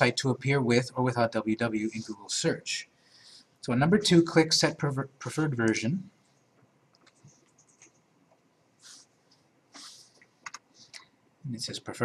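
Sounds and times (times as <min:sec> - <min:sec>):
computer mouse clicks: 0:06.6 - 0:08.5, 0:09.8 - 0:11.1
short soft hisses: 0:08.8 - 0:09.1, 0:09.7 - 0:10.2.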